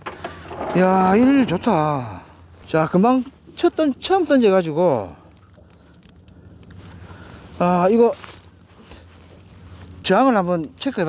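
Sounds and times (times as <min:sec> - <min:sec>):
light reel clicks: 0:04.8 - 0:06.8, 0:10.6 - 0:10.9
fishing reel cranking: 0:04.9 - 0:06.3, 0:10.6 - 0:10.9.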